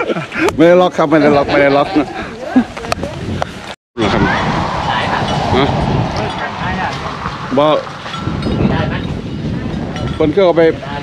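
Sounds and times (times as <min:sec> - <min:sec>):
loud rushing noise: 0:04.0 - 0:09.6.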